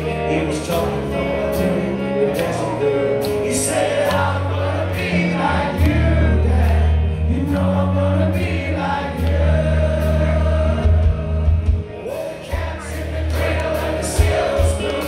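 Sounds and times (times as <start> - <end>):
man singing into microphone: 0.0 - 13.0
bass guitar sustained notes: 0.0 - 15.0
live rock band: 0.0 - 15.0.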